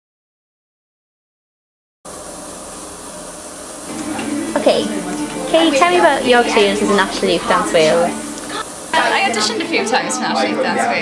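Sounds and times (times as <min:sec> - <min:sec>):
steady background hiss: 0:02.1 - 0:11.0.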